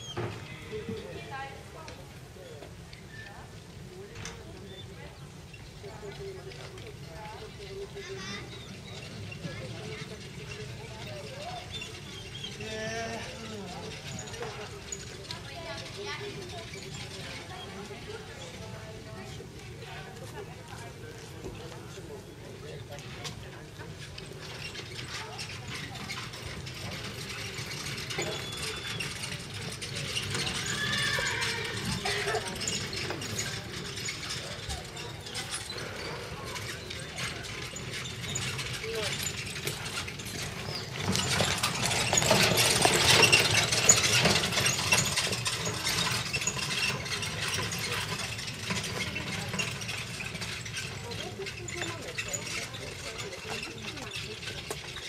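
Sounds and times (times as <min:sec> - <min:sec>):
horses and carriage on grass: 0:00.0 - 0:55.0.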